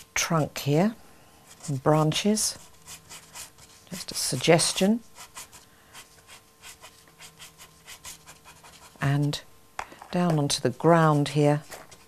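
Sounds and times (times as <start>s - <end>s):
pastel stick scratching on paper: 1.5s - 9.0s.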